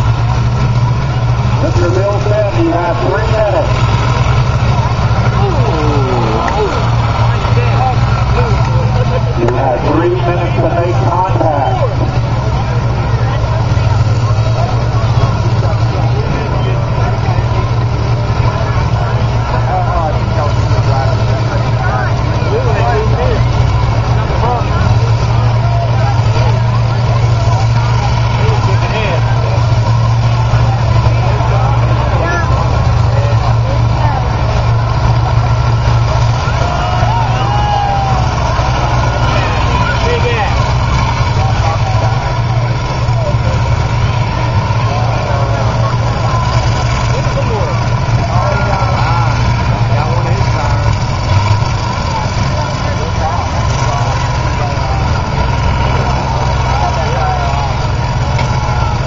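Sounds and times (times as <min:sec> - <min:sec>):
combine harvester engines droning: 0:00.0 - 0:59.0
crowd voices calling out: 0:00.0 - 0:59.0.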